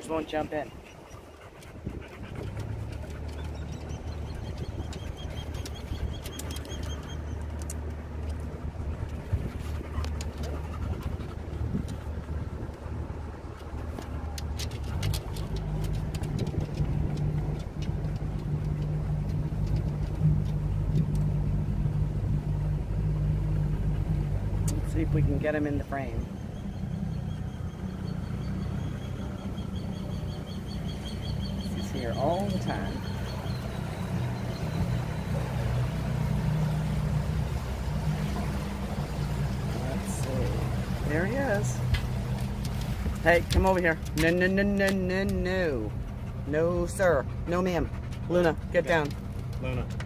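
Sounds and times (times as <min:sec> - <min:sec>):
outboard motor running: 0:00.0 - 0:50.0.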